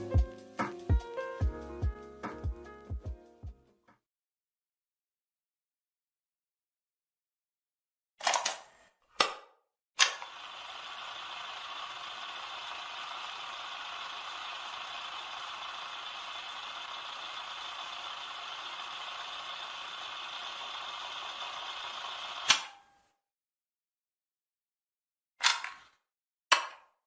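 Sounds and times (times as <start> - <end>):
sharp click: 22.4 - 22.8.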